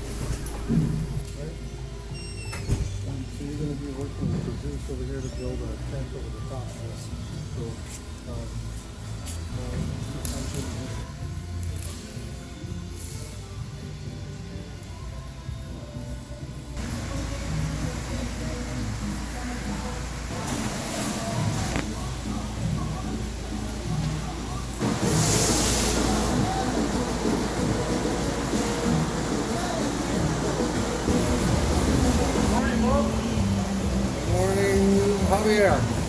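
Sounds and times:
music: 0:00.0 - 0:36.0.

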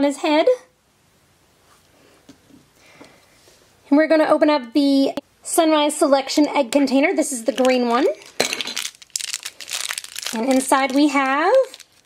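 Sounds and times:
plastic wrapper crumpled and torn: 0:07.3 - 0:12.0.

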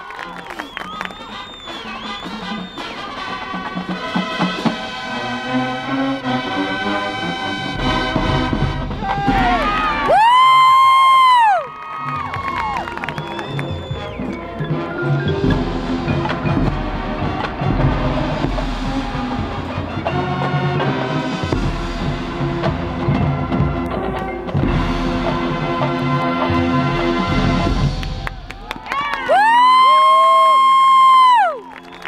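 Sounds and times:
marching band playing: 0:00.0 - 0:32.0
loud held brass chord: 0:02.4 - 0:09.0.

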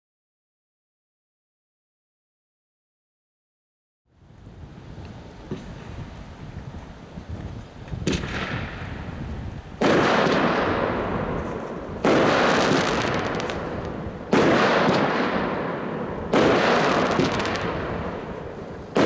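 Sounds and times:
wind rumble on microphone: 0:04.1 - 0:19.0
firework bangs: 0:08.0 - 0:19.0.

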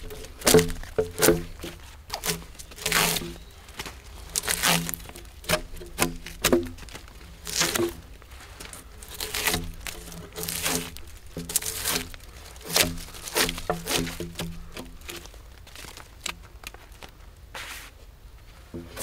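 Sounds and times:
drawknife scraping bark off log: 0:00.0 - 0:03.5, 0:04.2 - 0:16.4.

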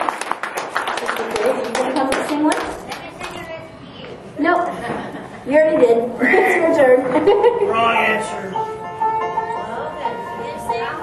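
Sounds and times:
audience applause: 0:00.0 - 0:03.4
voices in the room: 0:00.6 - 0:11.0.

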